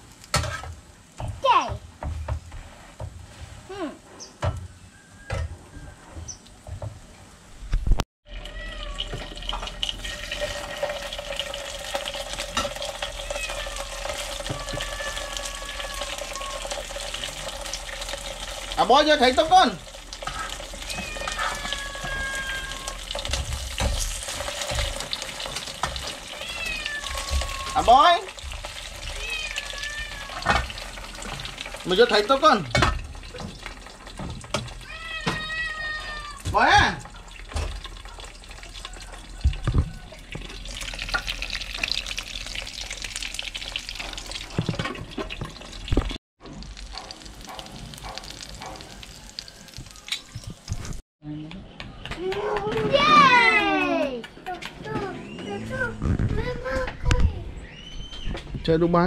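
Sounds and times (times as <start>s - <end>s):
fish sizzling in hot oil: 8.3s - 34.9s, 36.6s - 51.0s
cat meowing: 8.4s - 9.2s, 13.0s - 17.0s, 20.3s - 23.2s, 26.2s - 28.3s, 29.0s - 30.7s, 34.8s - 36.6s.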